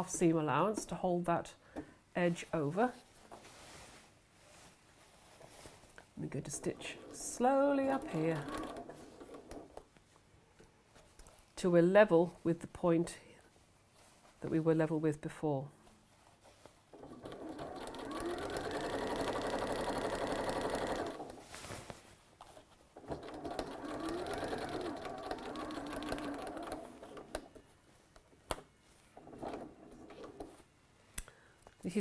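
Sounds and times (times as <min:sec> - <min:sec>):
sewing machine stitching: 0:06.3 - 0:09.8, 0:16.9 - 0:21.4, 0:23.0 - 0:27.6, 0:29.2 - 0:30.6.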